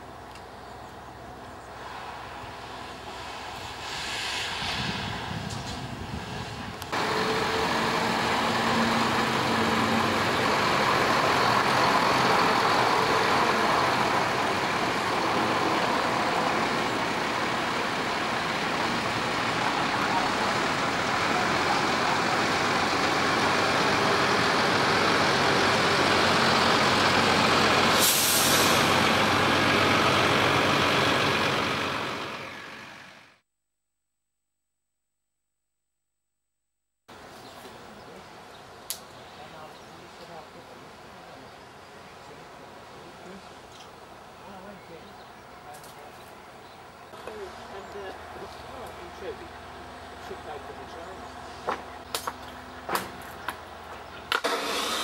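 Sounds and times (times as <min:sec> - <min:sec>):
air brakes hissing: 0:03.6 - 0:05.7, 0:27.9 - 0:29.0
lorry diesel engine running: 0:06.7 - 0:33.4, 0:39.8 - 0:55.0.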